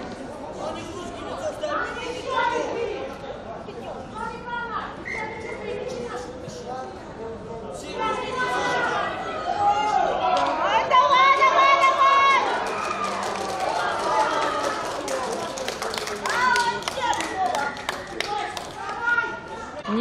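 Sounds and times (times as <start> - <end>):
sharp claps: 12.6 - 19.0.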